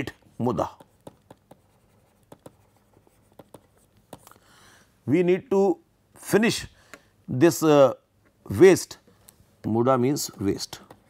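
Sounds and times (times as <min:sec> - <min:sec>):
stylus tapping and scratching on tablet: 0:00.5 - 0:04.4, 0:10.2 - 0:11.0.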